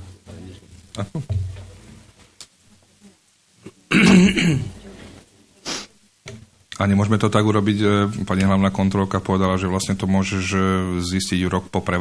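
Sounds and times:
person clearing throat: 3.6s - 4.8s.

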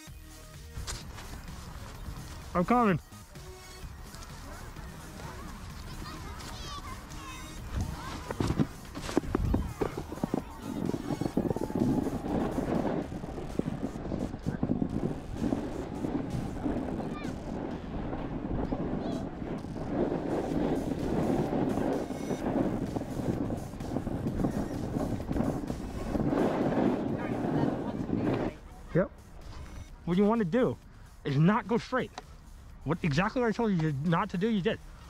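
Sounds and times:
snowboard scraping over snow: 0.8s - 3.0s, 3.8s - 30.5s
wind rushing over microphone: 3.8s - 30.8s.

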